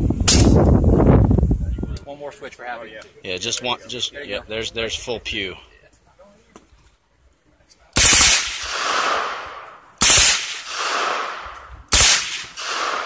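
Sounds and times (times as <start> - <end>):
gunshot echo: 0.2 - 0.6, 8.0 - 13.0.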